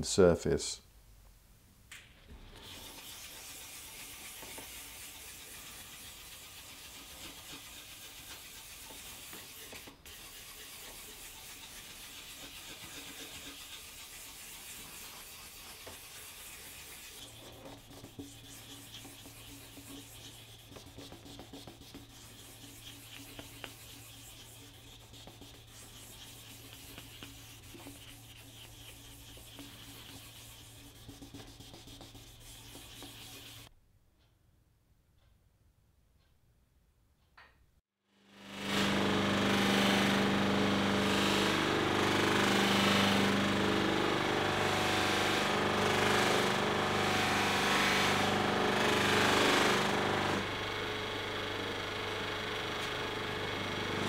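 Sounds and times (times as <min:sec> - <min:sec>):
hand sanding scratching: 0:02.6 - 0:33.7, 0:38.7 - 0:50.5.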